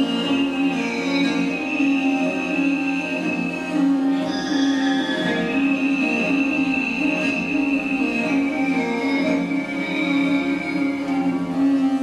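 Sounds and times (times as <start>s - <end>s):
bowed fiddles playing: 0.0s - 12.0s
held high tone: 0.0s - 12.0s.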